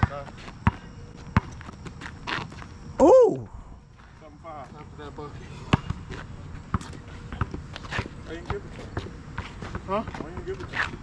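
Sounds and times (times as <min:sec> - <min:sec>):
basketball bouncing on asphalt: 0:00.0 - 0:02.7, 0:05.7 - 0:11.0.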